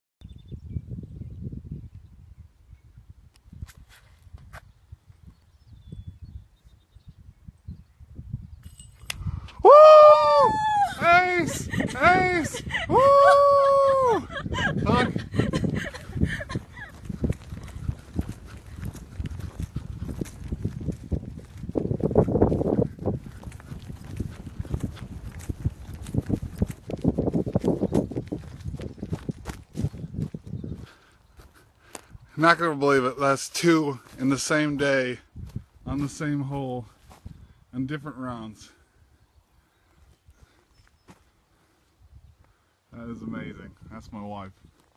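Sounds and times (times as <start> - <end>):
wind rumbling on microphone: 0.2 - 44.9
excited whoops and shrieks: 9.6 - 14.8
laughter: 11.5 - 17.0
footsteps on grass and wood chips: 15.8 - 32.6, 33.4 - 37.4, 40.4 - 41.4.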